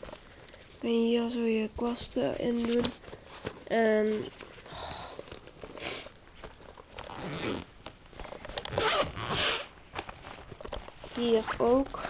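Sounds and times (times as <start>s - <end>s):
zipper pulled open: 7.0s - 7.7s, 8.7s - 9.7s.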